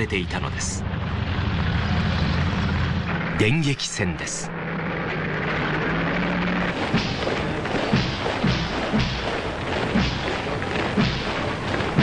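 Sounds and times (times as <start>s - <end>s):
background music: 3.1s - 12.0s
soldiers marching in unison: 5.5s - 12.0s.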